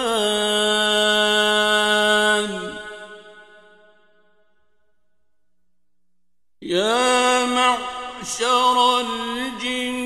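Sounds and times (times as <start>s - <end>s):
echo of voice: 0.0s - 5.0s, 6.6s - 10.0s.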